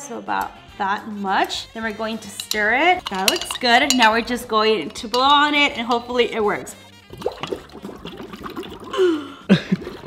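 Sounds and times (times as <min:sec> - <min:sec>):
air bubbling through straw in water: 0:07.1 - 0:10.0.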